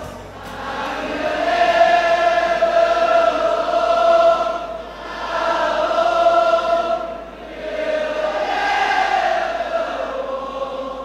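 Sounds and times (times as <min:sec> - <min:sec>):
choir singing long notes: 0:00.0 - 0:11.0.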